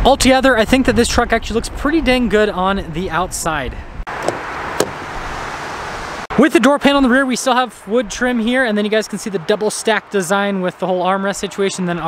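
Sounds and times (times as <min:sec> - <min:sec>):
car door latch clicks: 0:04.2 - 0:05.0.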